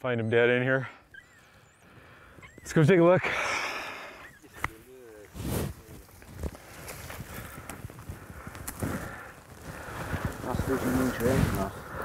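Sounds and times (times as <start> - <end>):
quiet voices: 2.4 - 12.0
footsteps through tall grass: 5.3 - 12.0.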